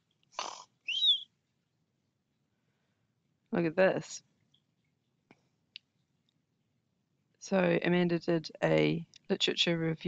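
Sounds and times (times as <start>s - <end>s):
bird rasping call: 0.4s - 1.2s
bird high chirp: 0.9s - 1.3s.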